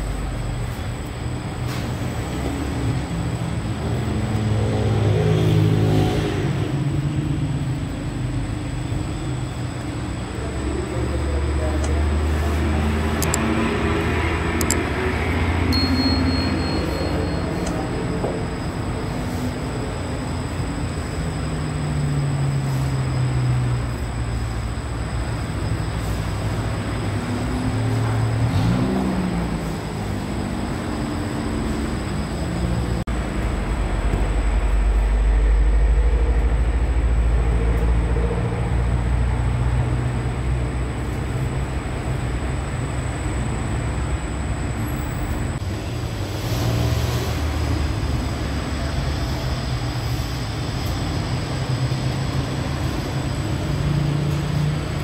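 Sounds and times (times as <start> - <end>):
indistinct voices: 3.0 - 21.0.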